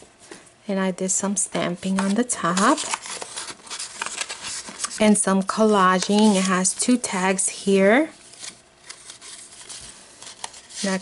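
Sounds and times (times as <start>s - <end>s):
paper rustling: 1.8s - 7.4s, 8.2s - 11.0s.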